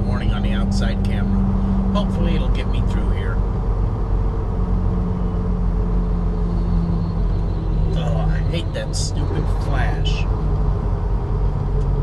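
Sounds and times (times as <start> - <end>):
truck diesel engine droning: 0.0 - 12.0.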